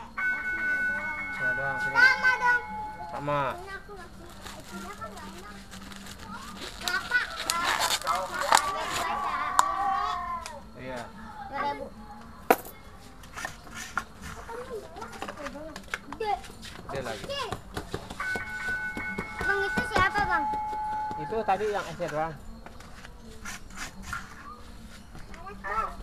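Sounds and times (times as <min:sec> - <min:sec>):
children talking and calling out: 0:00.0 - 0:16.6, 0:17.2 - 0:22.0, 0:24.1 - 0:26.0.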